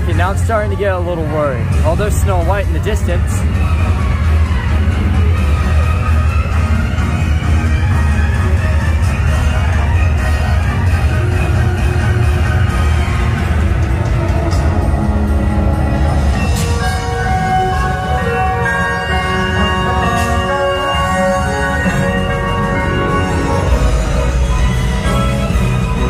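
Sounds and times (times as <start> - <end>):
heavy steady bass: 0.0 - 18.8, 19.4 - 26.0
parade music from speakers: 0.0 - 26.0.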